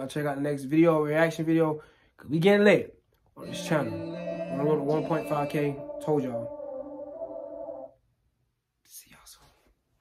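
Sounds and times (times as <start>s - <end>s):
man whispering: 3.5s - 6.5s, 8.8s - 9.8s.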